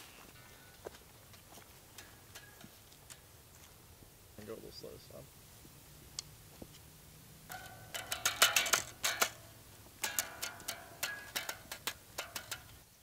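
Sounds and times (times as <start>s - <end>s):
sharp clicks and taps: 10.0s - 12.9s.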